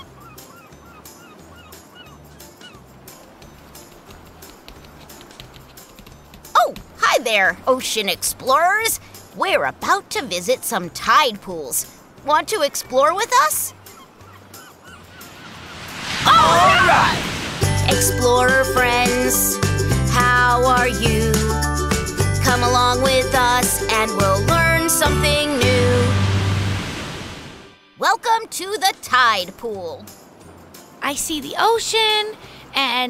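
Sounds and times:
seagulls calling: 0.0s - 3.2s, 12.4s - 17.4s
beach ambience: 0.0s - 21.4s, 22.5s - 33.0s.

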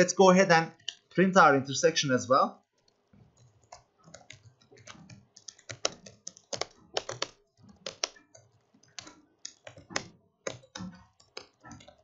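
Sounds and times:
laptop keyboard typing: 2.6s - 12.0s.

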